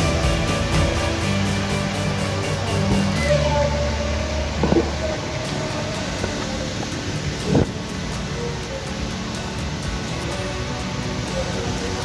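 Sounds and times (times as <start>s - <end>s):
sustained background music: 0.0s - 12.0s.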